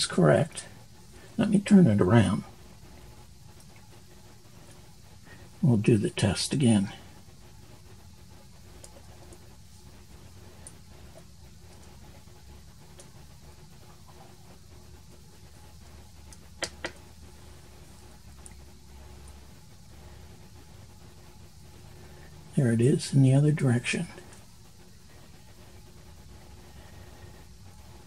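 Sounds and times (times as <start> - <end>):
faint room hum: 0.0 - 28.0.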